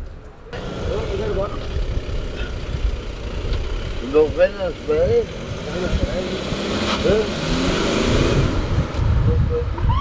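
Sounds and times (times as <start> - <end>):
voices talking: 0.4 - 7.6, 9.1 - 10.0
van engine idling: 0.6 - 6.4.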